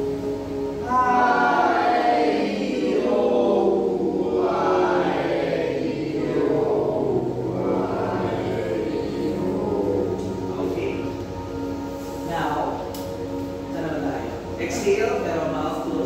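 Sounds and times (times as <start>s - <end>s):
group vocal warm-up: 0.8s - 12.3s.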